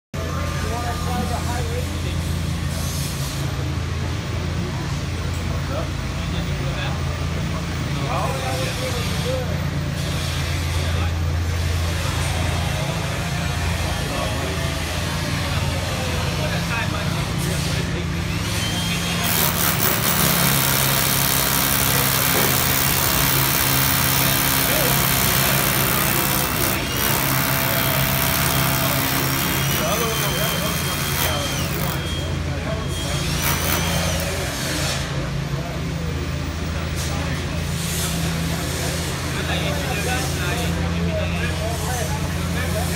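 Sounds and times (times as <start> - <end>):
hammer drill boring into concrete: 18.5 - 32.3, 33.0 - 34.5.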